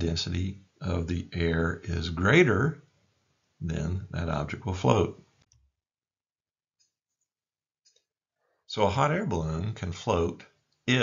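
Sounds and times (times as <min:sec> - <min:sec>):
person speaking: 0:00.0 - 0:02.8, 0:03.6 - 0:05.3, 0:08.7 - 0:11.0.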